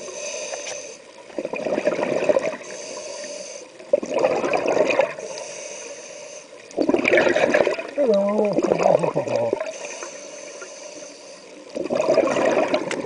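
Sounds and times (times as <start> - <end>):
underwater bubbling bursts: 0.0 - 5.6, 6.5 - 13.0
faint high hiss: 2.6 - 3.9, 5.2 - 6.8.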